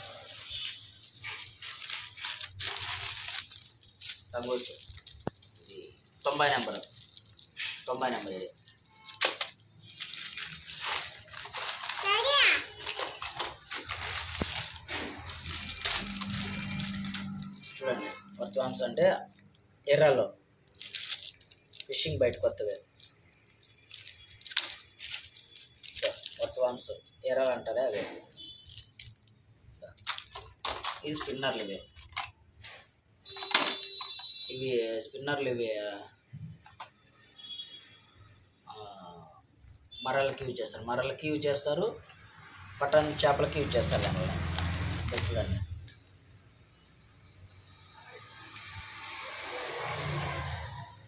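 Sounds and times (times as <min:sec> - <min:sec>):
plastic bags rustling: 0:00.0 - 0:19.6, 0:20.6 - 0:32.4, 0:43.1 - 0:46.0
voices in a room: 0:00.0 - 0:51.0
man speaking: 0:17.8 - 0:20.4, 0:21.9 - 0:22.8, 0:31.0 - 0:31.9.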